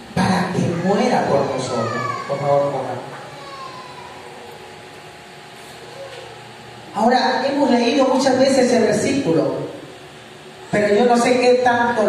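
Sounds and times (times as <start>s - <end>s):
low room hum and hiss: 0.0s - 12.0s.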